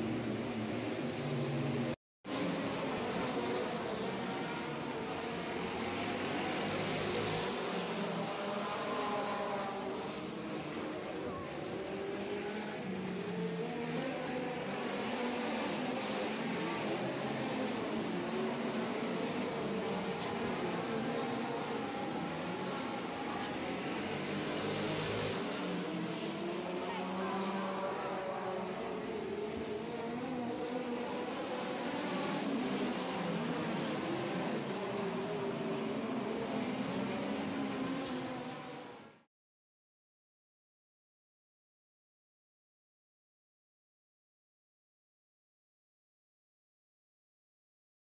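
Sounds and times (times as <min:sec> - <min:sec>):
race car engines droning: 0:00.0 - 0:39.1.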